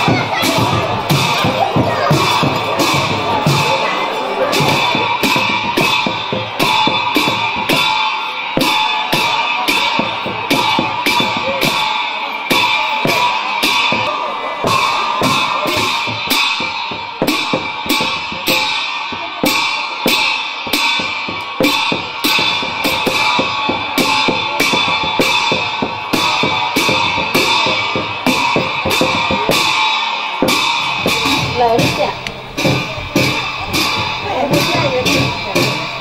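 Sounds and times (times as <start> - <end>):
drum strikes: 0.0 - 36.0
hand cymbals ringing: 0.0 - 36.0.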